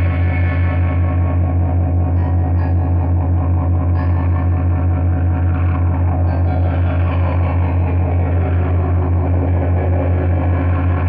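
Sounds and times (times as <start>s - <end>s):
low droning synth note: 0.0s - 11.0s.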